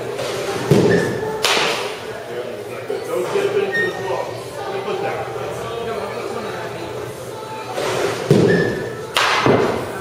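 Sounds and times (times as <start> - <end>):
baseball bat striking ball: 0.7 - 1.9, 8.3 - 9.8.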